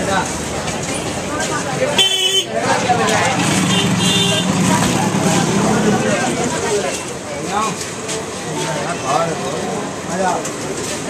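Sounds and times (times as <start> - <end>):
crowd voices: 0.0 - 11.0
motor vehicle hum: 2.6 - 11.0.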